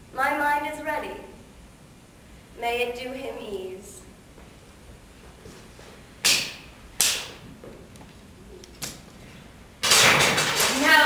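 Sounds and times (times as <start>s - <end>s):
sharp cracks with echo: 6.2s - 7.5s, 9.8s - 11.0s.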